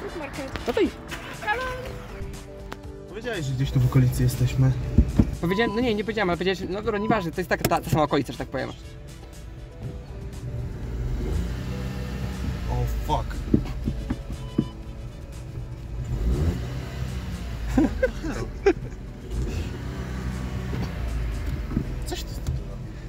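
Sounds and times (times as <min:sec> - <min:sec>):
car engine droning: 0:09.6 - 0:23.0.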